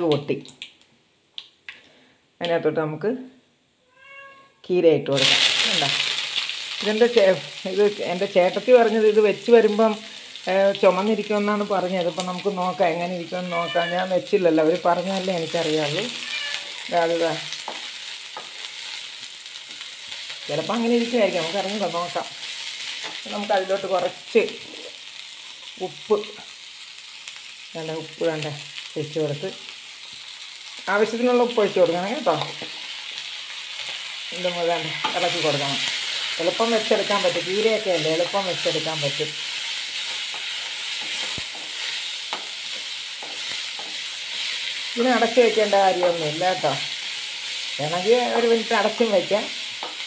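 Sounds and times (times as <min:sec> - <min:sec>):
leaves sizzling in hot oil: 0:05.1 - 0:50.0.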